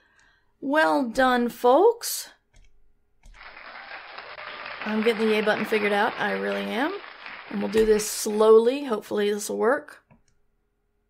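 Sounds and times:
muffled recorded applause: 0:03.4 - 0:08.4.

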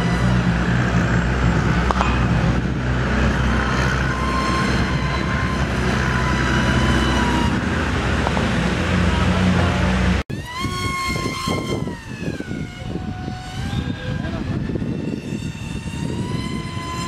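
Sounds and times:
loud steady low rumble: 0:00.0 - 0:17.0
model airplane motor whining: 0:00.0 - 0:17.0.

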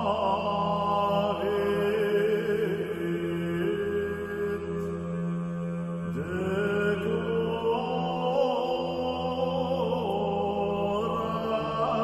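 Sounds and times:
slow chanting voices: 0:00.0 - 0:12.0
steady low drone: 0:00.0 - 0:12.0.

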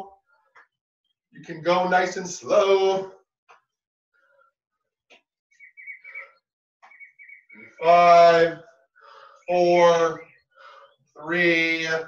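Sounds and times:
small bird chirping: 0:05.5 - 0:07.8.

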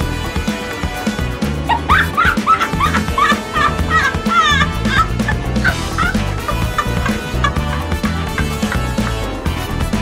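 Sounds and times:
background music with bass beat: 0:00.0 - 0:10.0.

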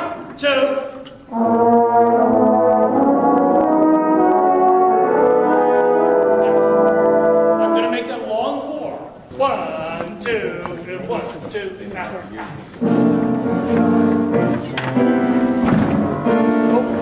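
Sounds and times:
brass section playing slow chords: 0:01.3 - 0:08.2.

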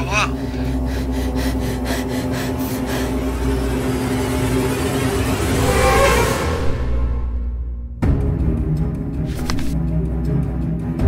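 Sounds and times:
low sustained drone: 0:00.0 - 0:07.7.

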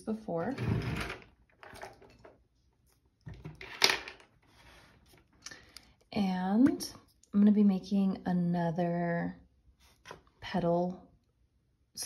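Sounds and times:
small tools rustling and scraping: 0:00.5 - 0:05.4.

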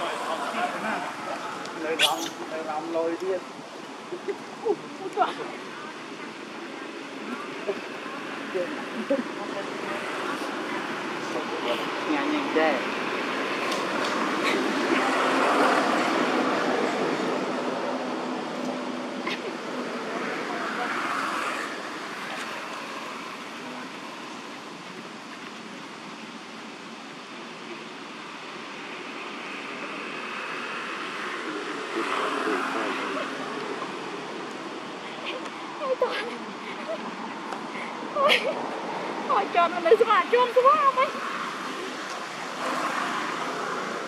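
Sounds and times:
road traffic passing: 0:00.0 - 0:44.0
people talking: 0:31.3 - 0:34.0, 0:35.2 - 0:37.0, 0:39.2 - 0:41.9.

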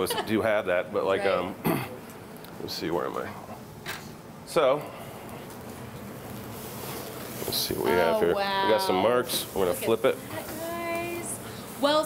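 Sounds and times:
steak sizzling on a grill: 0:06.4 - 0:12.0.

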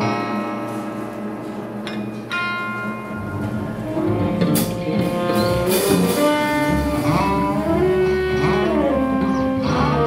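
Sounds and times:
drum kit: 0:00.0 - 0:10.0
electric guitar: 0:00.0 - 0:10.0
saxophone: 0:03.5 - 0:10.0.

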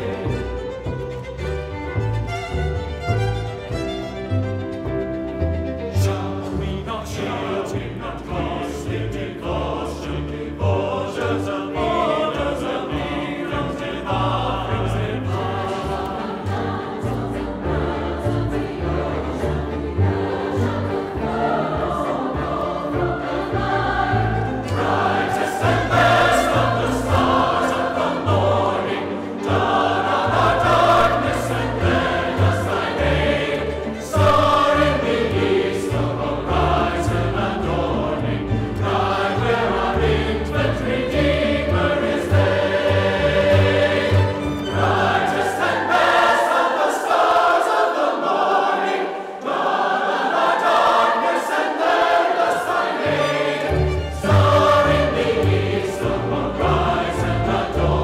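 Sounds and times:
mixed choir singing: 0:00.0 - 0:01.0, 0:05.9 - 0:58.0
string orchestra: 0:00.0 - 0:58.0.

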